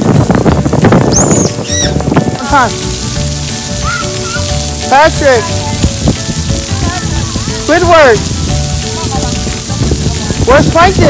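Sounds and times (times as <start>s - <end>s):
water jets spraying and splashing: 0.0s - 11.0s.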